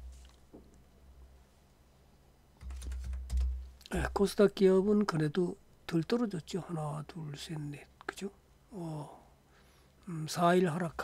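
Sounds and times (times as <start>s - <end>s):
quick keyboard keystrokes: 2.6s - 3.6s.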